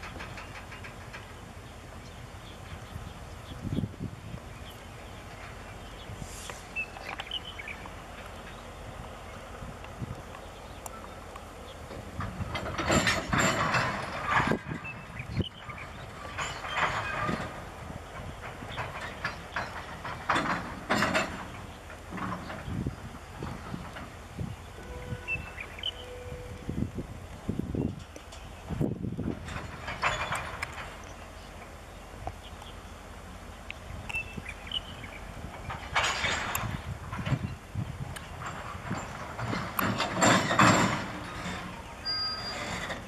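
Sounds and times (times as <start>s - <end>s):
freight wagons rolling on track: 0.0s - 43.0s
locomotive low rumble: 0.0s - 43.0s
wheels and couplings clanking: 0.0s - 43.0s.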